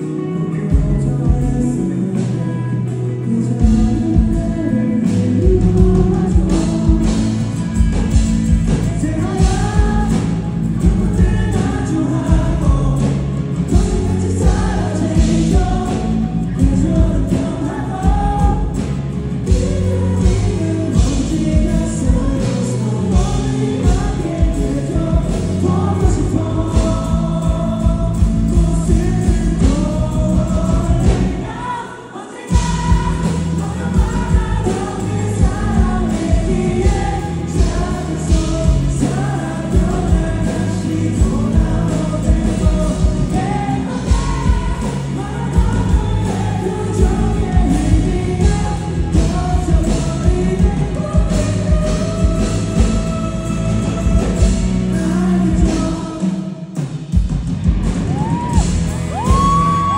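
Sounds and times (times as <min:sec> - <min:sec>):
man singing: 0:00.0 - 0:57.1, 0:58.1 - 0:59.9
acoustic guitar: 0:00.0 - 0:59.9
band playing: 0:00.0 - 0:59.9
bass: 0:00.0 - 0:59.9
drums with steady beat: 0:00.0 - 0:59.9.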